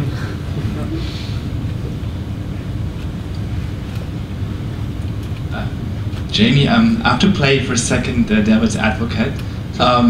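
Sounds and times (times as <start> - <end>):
faint voices: 0.0 - 2.7
low room rumble and hum: 0.0 - 10.0.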